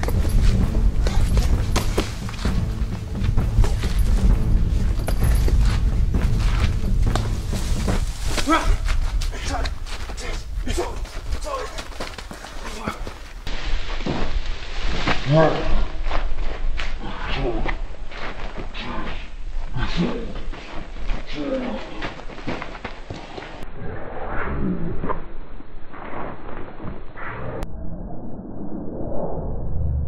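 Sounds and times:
people scuffling: 0.0s - 23.6s.

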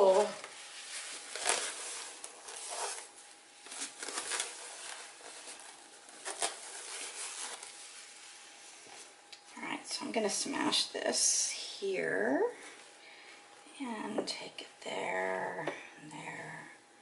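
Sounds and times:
person speaking: 0.0s - 0.5s
rustling and handling noises: 0.0s - 10.8s
faint steady hum: 0.0s - 17.0s.

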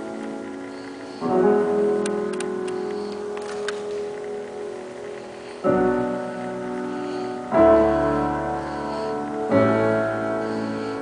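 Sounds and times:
piano chord: 0.0s - 11.0s
light sharp clicks: 2.0s - 5.4s.

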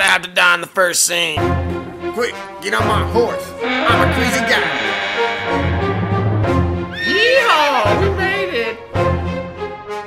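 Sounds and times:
horse whinny: 3.6s - 7.2s.

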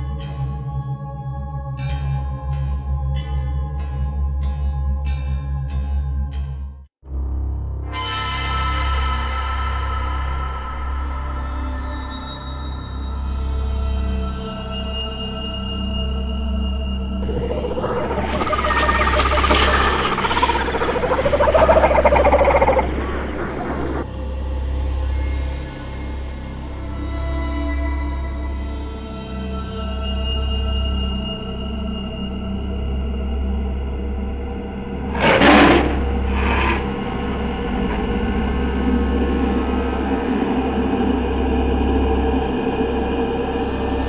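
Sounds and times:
dark horror soundtrack drone: 0.0s - 44.0s
hissing whooshes: 17.2s - 24.0s.

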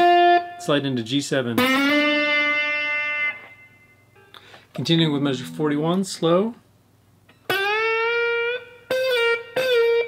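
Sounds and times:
person speaking: 4.7s - 6.7s.

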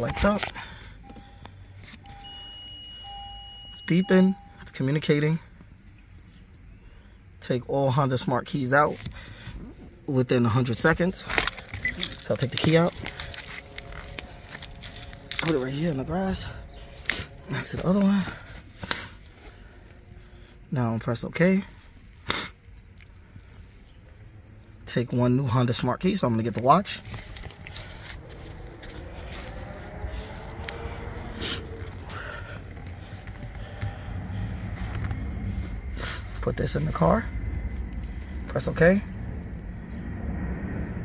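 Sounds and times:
low rumble: 8.0s - 41.0s
footsteps on gravel and grass: 11.6s - 19.3s, 26.8s - 30.8s.

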